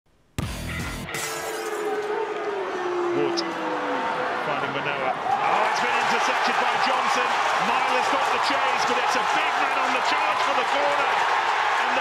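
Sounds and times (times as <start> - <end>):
glass shattering crash: 1.1 - 2.0.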